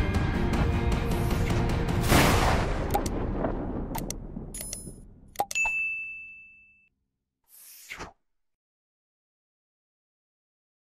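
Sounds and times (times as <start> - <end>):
low rumble: 2.2 - 5.3
sharp clicks: 2.9 - 3.2, 3.9 - 4.8
bell-like ding: 5.5 - 6.9.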